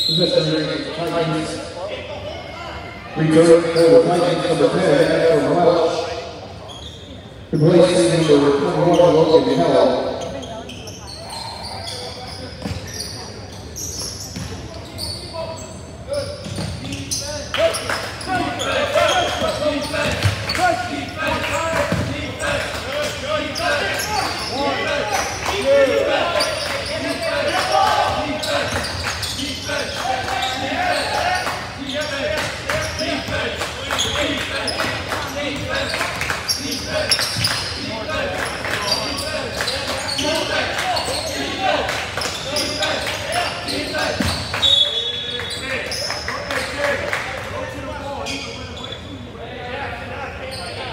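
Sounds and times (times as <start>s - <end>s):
referee's whistle: 0.0s - 0.5s, 43.7s - 46.1s
many people's voices: 0.0s - 50.9s
ball bouncing on hardwood court: 21.3s - 22.2s.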